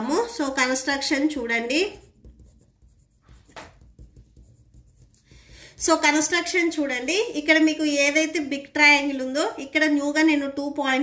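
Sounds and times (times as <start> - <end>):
pen scratching on paper: 1.4 - 7.7.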